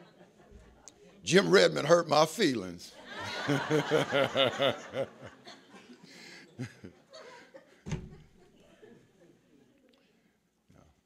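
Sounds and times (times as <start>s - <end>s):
man laughing: 3.2s - 5.6s, 6.3s - 7.4s.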